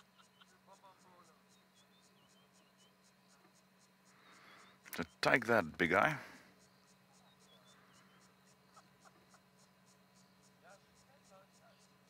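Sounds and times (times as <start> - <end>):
faint insect chirping: 0.0 - 12.0.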